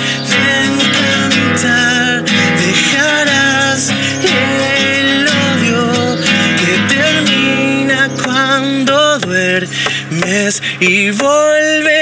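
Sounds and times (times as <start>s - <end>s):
man singing with vibrato: 0.0s - 12.0s
strummed classical guitar: 0.0s - 12.0s.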